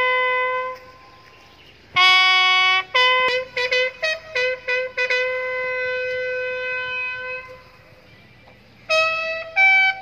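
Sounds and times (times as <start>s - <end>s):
bugle long held note: 0.0s - 1.2s, 2.0s - 10.0s.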